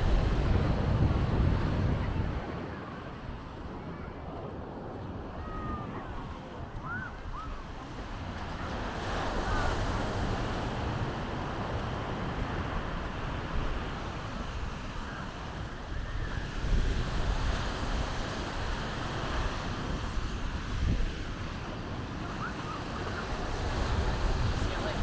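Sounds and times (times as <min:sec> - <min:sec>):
ocean surf washing: 0:00.0 - 0:25.0
wind rumbling on microphone: 0:00.0 - 0:25.0.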